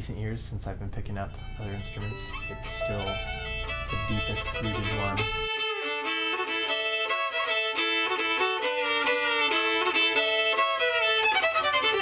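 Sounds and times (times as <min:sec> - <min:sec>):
solo violin melody: 0:01.1 - 0:12.0.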